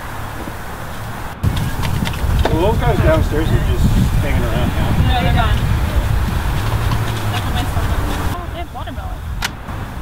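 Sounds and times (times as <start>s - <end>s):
road traffic rumble: 0.0s - 10.0s
faint voices: 2.5s - 9.2s.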